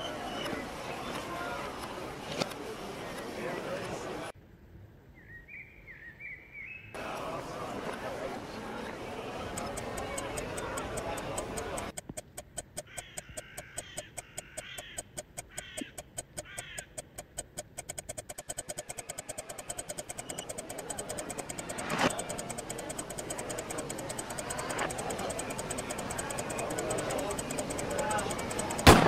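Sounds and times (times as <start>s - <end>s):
ticking pulse: 9.4s - 29.0s.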